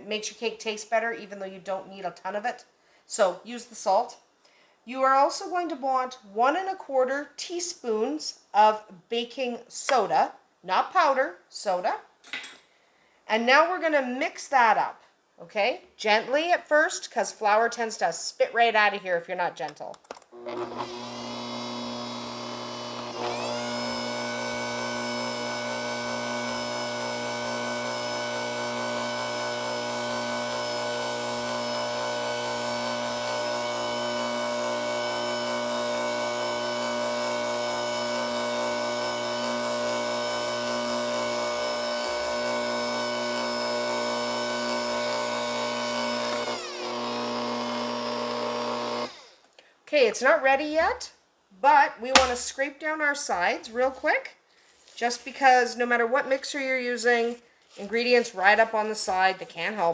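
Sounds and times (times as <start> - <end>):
stand mixer motor whining: 20.4 - 49.2.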